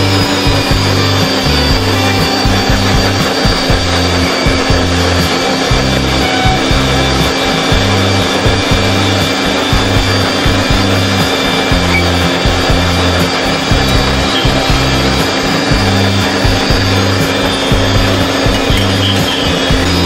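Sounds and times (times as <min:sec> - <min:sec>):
background music with bass line: 0:00.0 - 0:20.0
blenders whirring: 0:00.0 - 0:20.0.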